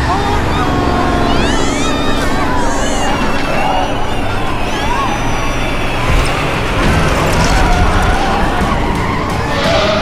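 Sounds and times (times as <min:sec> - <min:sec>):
bus driving along road: 0:00.0 - 0:10.0.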